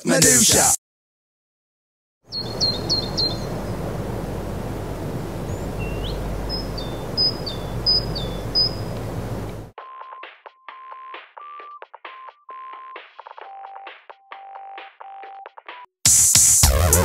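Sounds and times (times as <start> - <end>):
small birds chirping: 2.3 - 9.7
steady low rumble: 2.4 - 9.7.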